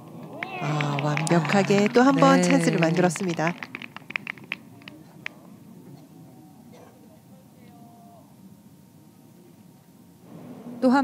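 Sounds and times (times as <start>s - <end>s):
people clapping: 0.0s - 5.4s.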